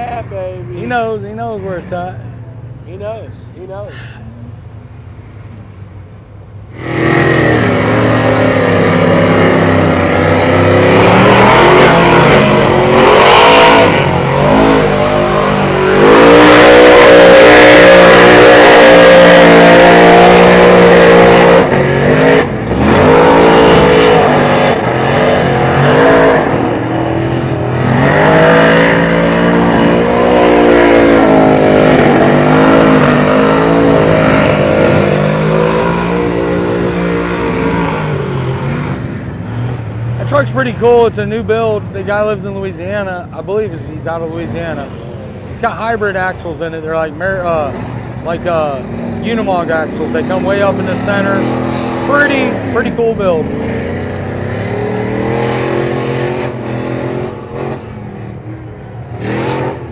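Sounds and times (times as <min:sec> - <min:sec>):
truck engine revving: 0:06.6 - 0:59.9.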